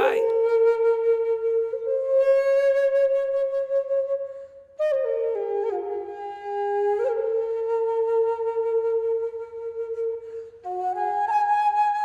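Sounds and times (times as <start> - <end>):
flute playing: 0.3 - 12.0.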